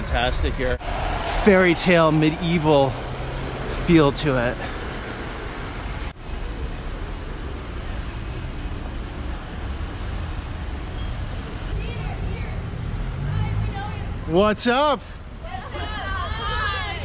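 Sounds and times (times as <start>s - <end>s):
traffic rumble: 0.0s - 17.0s.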